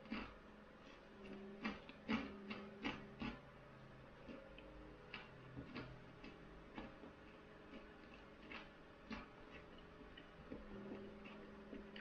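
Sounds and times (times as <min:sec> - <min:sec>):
person chewing food: 0:00.0 - 0:03.5, 0:04.1 - 0:12.0.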